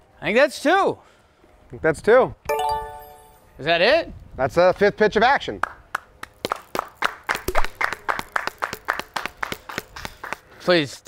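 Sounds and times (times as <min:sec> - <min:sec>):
people clapping: 0:05.6 - 0:10.5.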